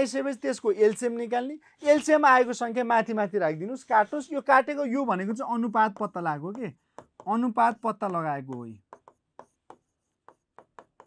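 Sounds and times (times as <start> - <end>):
chalk writing on a blackboard: 3.6 - 11.0.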